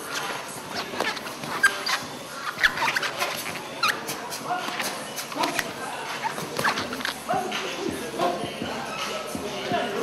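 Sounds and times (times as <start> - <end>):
short high squeaks: 0.0 - 4.2.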